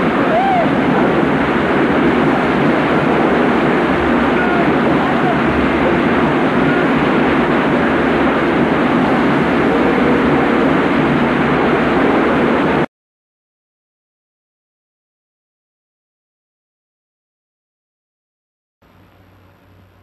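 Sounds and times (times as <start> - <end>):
faint voices: 0.0 - 1.3, 4.1 - 11.0
loud steady rushing din: 0.0 - 12.9.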